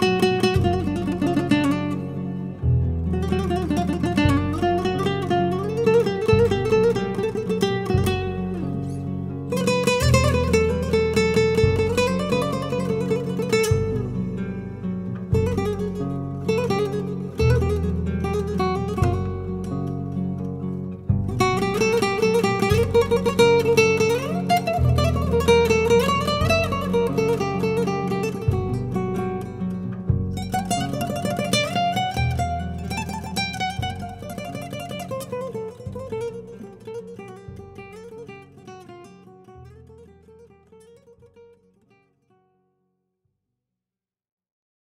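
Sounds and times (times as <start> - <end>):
nylon-string guitar playing: 0.0 - 42.7.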